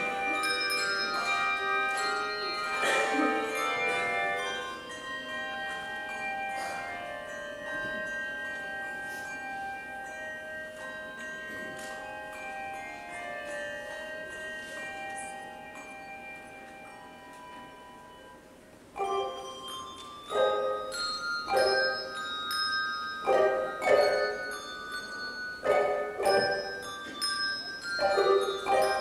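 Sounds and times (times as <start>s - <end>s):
handbell choir ringing: 0.0s - 29.0s.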